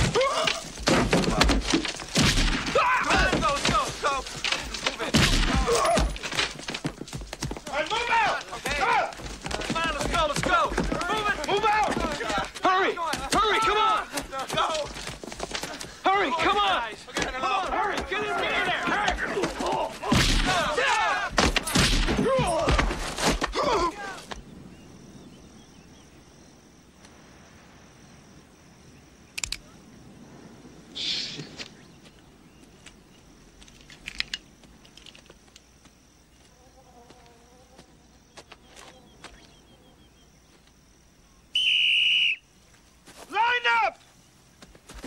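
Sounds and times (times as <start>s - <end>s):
faint high insect-like tone: 0.0s - 45.0s
men shouting: 2.7s - 6.2s, 7.7s - 15.0s, 15.7s - 22.9s, 23.5s - 24.4s, 43.3s - 44.0s
faint chirps: 23.6s - 33.5s, 38.0s - 43.0s.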